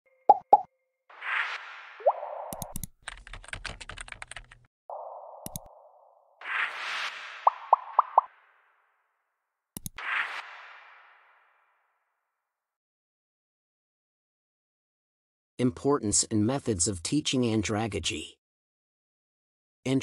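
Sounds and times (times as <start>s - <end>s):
interface pops: 2.0s - 2.9s, 4.9s - 6.1s, 7.2s - 8.3s
mouse clicks: 2.5s - 2.9s, 5.4s - 5.7s, 9.8s - 10.0s
keyboard typing clicks: 2.5s - 4.6s, 5.4s - 5.7s, 9.8s - 10.0s.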